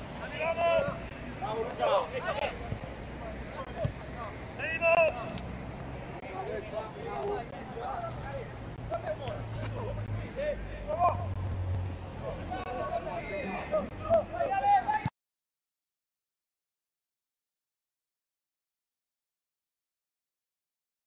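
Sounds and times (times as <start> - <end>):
footballers shouting: 0.0 - 15.1.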